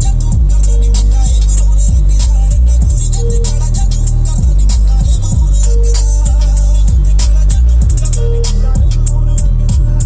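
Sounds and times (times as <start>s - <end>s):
loud music with deep bass: 0.0s - 10.0s.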